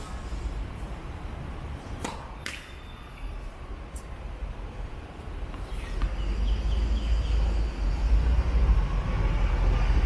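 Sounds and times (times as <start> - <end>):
racket striking tennis ball: 2.0 - 2.8.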